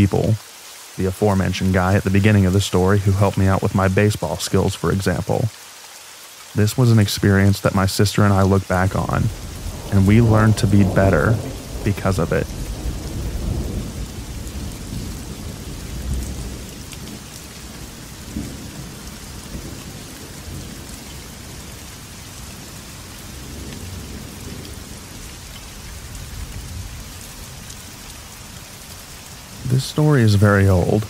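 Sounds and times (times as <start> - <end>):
steady light rain: 0.0 - 31.0
thunder rumbling: 8.2 - 28.6.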